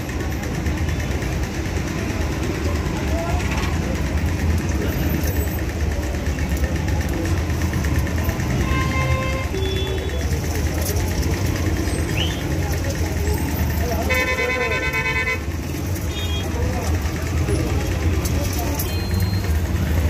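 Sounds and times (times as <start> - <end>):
vehicle engines idling and passing: 0.0 - 20.0.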